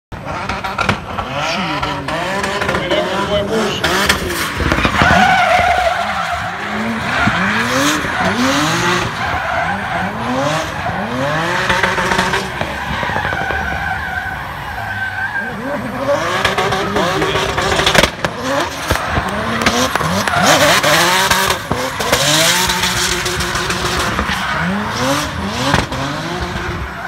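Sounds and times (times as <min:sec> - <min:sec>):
car engine revving: 0:00.1 - 0:27.0
tyres squealing: 0:01.5 - 0:25.2.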